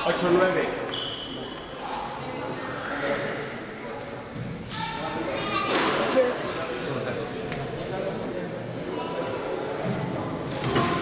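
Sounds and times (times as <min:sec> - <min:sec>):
indistinct echoing voices: 0:00.0 - 0:11.0.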